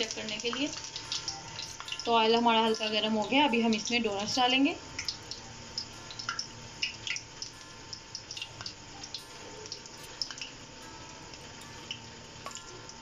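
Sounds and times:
dough sizzling in oil: 0:00.0 - 0:13.0.

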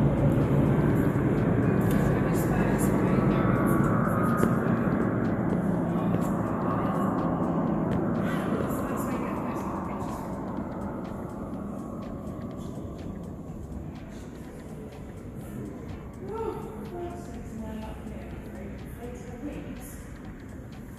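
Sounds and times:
aircraft engine drone: 0:00.0 - 0:20.9
indistinct voices: 0:00.0 - 0:20.9.

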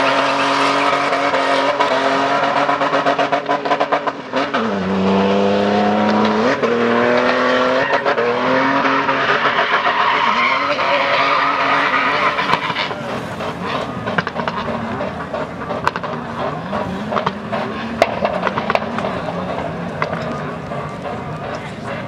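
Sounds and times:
car engine revving: 0:00.0 - 0:22.0
tyre squeal: 0:07.6 - 0:14.0.

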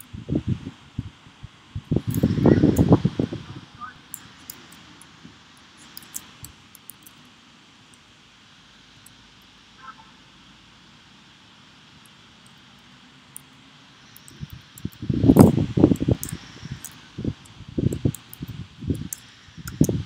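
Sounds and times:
low steady hiss: 0:00.0 - 0:20.0.

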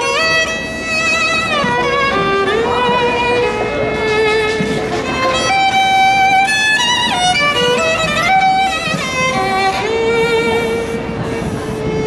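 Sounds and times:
fiddle long held note: 0:00.0 - 0:12.0.

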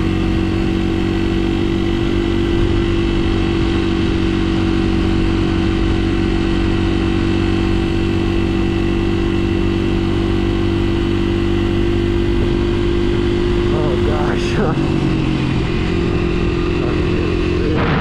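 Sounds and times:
motorcycle engine running: 0:00.0 - 0:18.0.

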